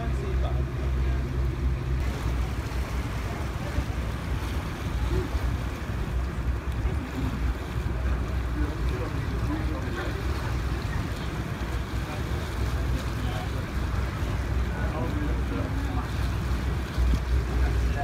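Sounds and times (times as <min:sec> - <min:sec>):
boat engine rumble: 0:00.0 - 0:18.0.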